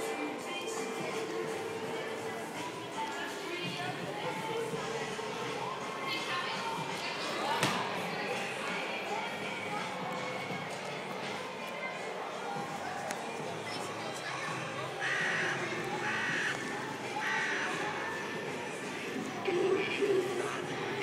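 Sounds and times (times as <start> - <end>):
background music: 0.0 - 21.0
distant voices: 6.7 - 21.0.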